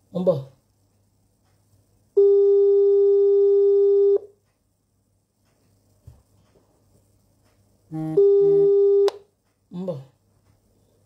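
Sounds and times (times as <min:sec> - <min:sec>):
telephone ringing tone: 0:02.2 - 0:04.3, 0:08.2 - 0:09.1.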